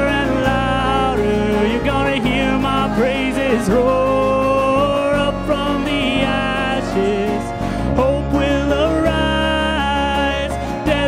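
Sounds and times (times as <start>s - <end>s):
guitars and bass playing: 0.0s - 11.0s.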